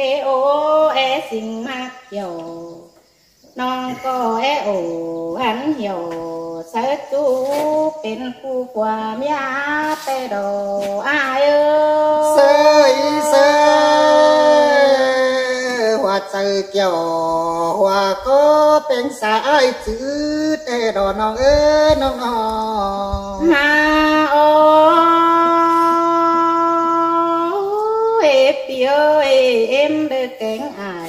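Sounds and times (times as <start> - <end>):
woman singing a long note: 3.6 - 15.9, 23.4 - 30.7
person singing long note: 10.9 - 16.1, 19.9 - 28.2.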